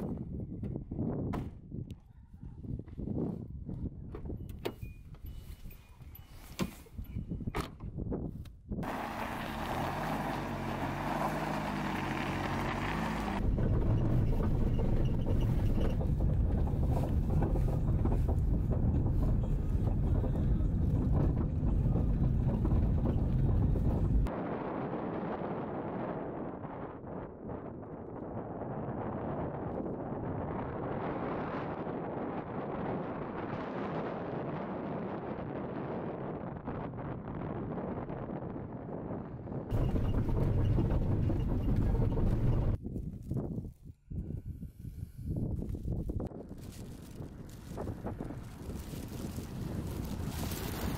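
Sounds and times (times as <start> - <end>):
wind buffeting microphone: 0.0 - 50.9
car engine running: 8.8 - 24.3, 39.7 - 42.8.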